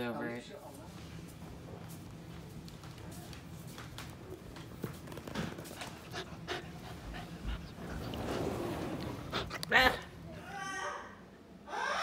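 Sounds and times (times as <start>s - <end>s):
puppy panting: 5.4s - 10.2s.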